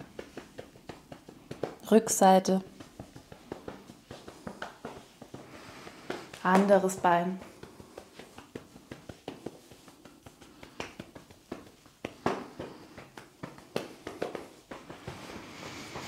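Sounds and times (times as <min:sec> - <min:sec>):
hands patting a leg: 0:00.0 - 0:16.0.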